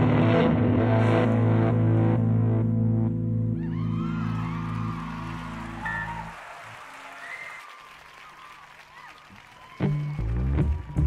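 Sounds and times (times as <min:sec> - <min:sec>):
crowd applauding and cheering: 0:03.6 - 0:11.0
crowd whistles: 0:03.6 - 0:11.0.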